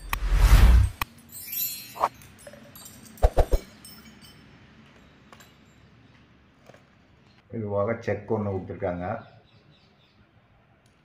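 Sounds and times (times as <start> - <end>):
metal drill bits clinking: 1.0 - 5.9.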